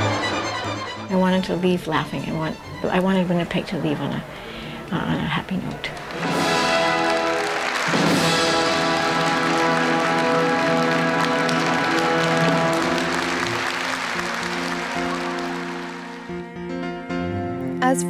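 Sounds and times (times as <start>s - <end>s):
audience applause: 0.0s - 1.1s, 5.9s - 16.5s
orchestral ballet music: 0.0s - 3.9s, 6.0s - 18.0s.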